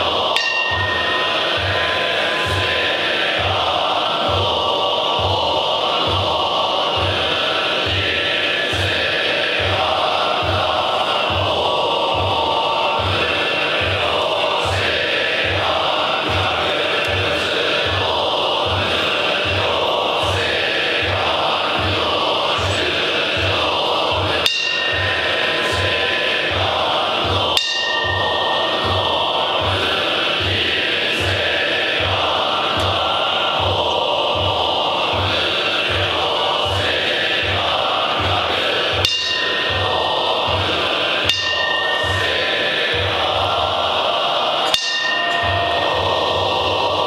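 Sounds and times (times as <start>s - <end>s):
monks chanting in unison: 0.0s - 47.0s
steady low beat: 0.0s - 47.0s
metal bell ringing: 0.3s - 4.4s, 24.5s - 26.6s, 27.6s - 29.7s, 39.0s - 40.6s, 41.2s - 43.4s, 44.7s - 46.8s.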